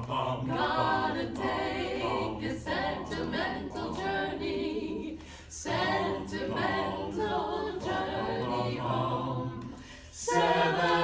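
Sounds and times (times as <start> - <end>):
women singing a cappella: 0.0 - 11.0.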